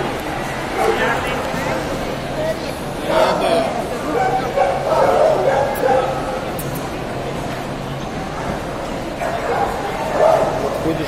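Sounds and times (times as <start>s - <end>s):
crowd chatter echoing in a hall: 0.0s - 11.0s.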